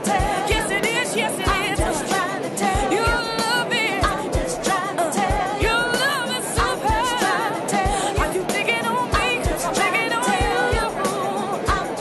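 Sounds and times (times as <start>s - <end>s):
person singing with vibrato: 0.0s - 12.0s
steady drum beat: 0.0s - 12.0s.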